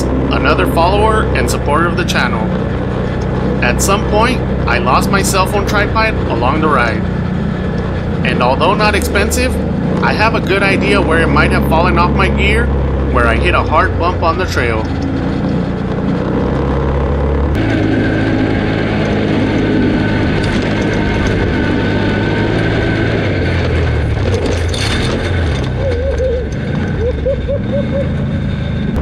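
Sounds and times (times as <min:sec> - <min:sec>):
atv engine running: 0:00.0 - 0:29.0.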